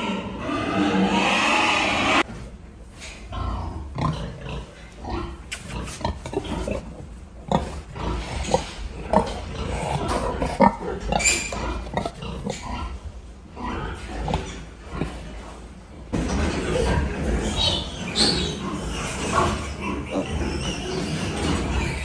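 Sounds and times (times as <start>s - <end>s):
pigs grunting: 0.0s - 2.5s, 3.2s - 22.0s.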